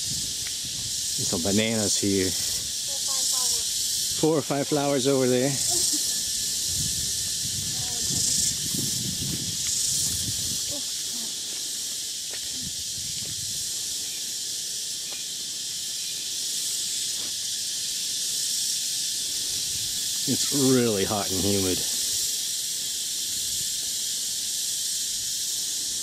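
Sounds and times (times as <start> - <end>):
insect drone: 0.0 - 26.0.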